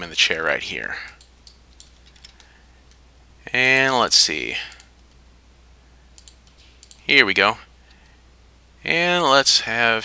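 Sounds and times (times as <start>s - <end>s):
low electrical hum: 0.0s - 10.0s
mouse and keyboard clicks: 6.2s - 7.1s.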